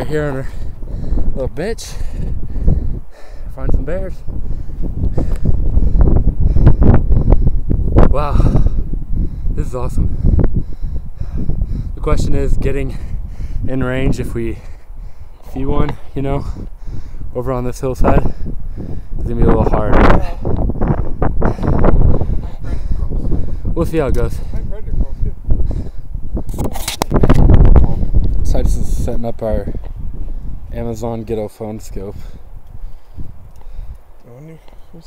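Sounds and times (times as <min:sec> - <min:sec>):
man talking: 0:00.0 - 0:00.6, 0:01.3 - 0:02.1, 0:03.5 - 0:04.2, 0:09.5 - 0:10.2, 0:12.0 - 0:14.7, 0:15.4 - 0:16.6, 0:17.3 - 0:18.3, 0:19.2 - 0:20.2, 0:22.6 - 0:25.4, 0:27.8 - 0:29.8, 0:30.7 - 0:32.4, 0:34.2 - 0:34.7
wind buffeting microphone: 0:00.0 - 0:35.0.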